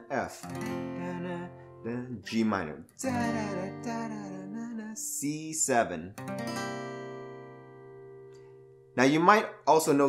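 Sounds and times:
acoustic guitar chord strum: 0.0 - 9.4.

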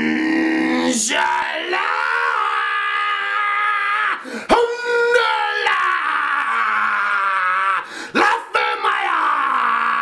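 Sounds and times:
man screaming: 0.0 - 10.0.

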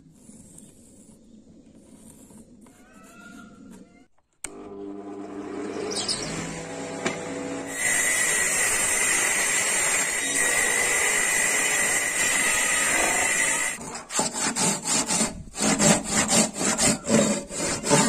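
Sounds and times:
circular saw cutting wood: 5.2 - 18.0
handsaw cutting wood: 7.6 - 18.0.

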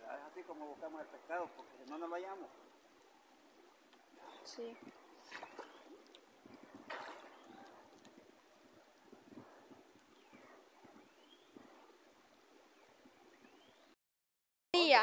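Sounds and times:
outdoor ambience: 0.0 - 14.0
faint rising chirps: 1.8 - 14.0
water splashing: 6.8 - 7.9.

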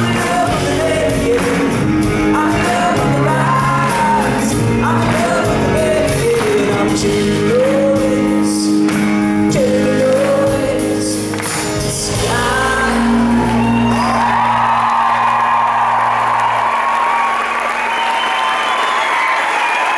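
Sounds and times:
audience cheering and applause: 0.0 - 5.9, 11.4 - 19.9
man singing: 0.0 - 14.0
pop-rock band playing: 0.0 - 17.9.

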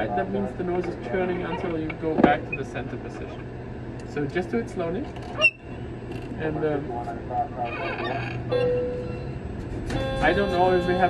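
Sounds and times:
simulated airliner engine hum: 0.0 - 7.7.

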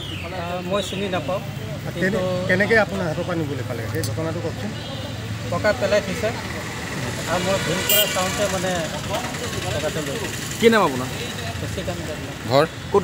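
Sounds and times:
vehicle engine humming: 0.0 - 13.0
man talking: 7.1 - 13.0.

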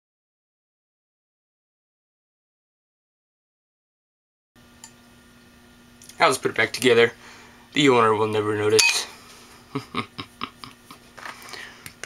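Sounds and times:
small click: 4.8 - 5.0
man chuckling softly: 9.5 - 11.5.

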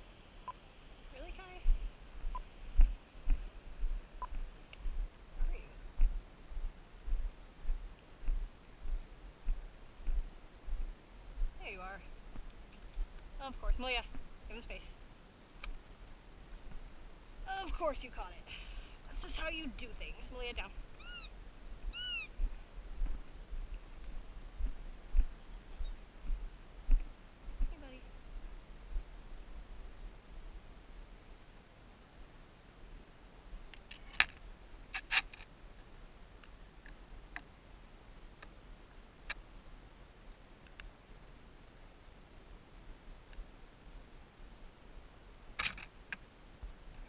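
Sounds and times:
animal whining calls: 21.0 - 21.3, 21.9 - 22.4
faint click: 40.6 - 40.9.

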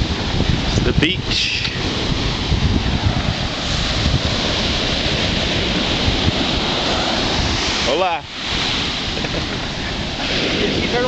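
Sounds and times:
ocean surf breaking: 0.0 - 11.0
wind buffeting microphone: 0.0 - 11.0.

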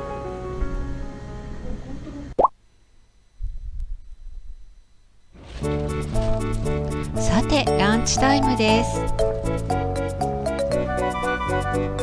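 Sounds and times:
faint low rumble: 3.2 - 10.0
background music: 5.4 - 12.0.

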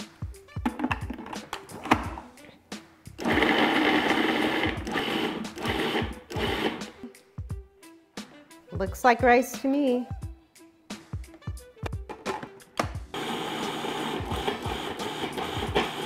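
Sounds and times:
food processor motor chopping: 3.2 - 7.0, 13.2 - 16.0.

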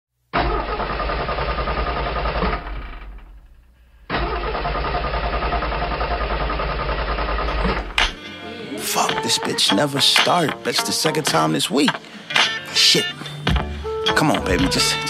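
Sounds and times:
car starter cranking engine: 0.3 - 8.3.

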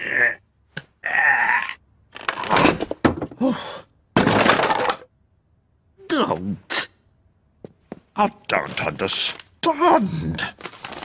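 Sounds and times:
man grunting and groaning: 0.0 - 0.4, 1.0 - 1.8, 3.4 - 3.9
wooden cabinet cracking and crashing: 2.2 - 3.4, 4.2 - 5.1.

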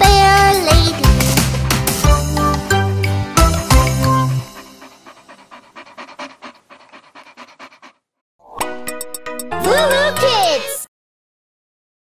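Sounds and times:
cartoon puppy panting: 0.0 - 2.8, 3.4 - 8.2.

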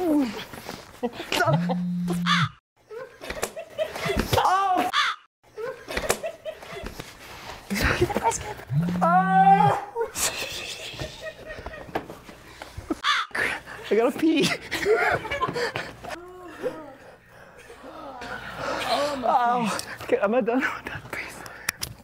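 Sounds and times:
laughter: 1.0 - 1.8, 2.9 - 4.4, 5.5 - 7.0, 7.7 - 8.6, 10.0 - 12.1, 14.4 - 16.0
shock collar buzzing: 1.4 - 2.6, 8.6 - 9.4
man yelping in pain: 8.9 - 10.1.

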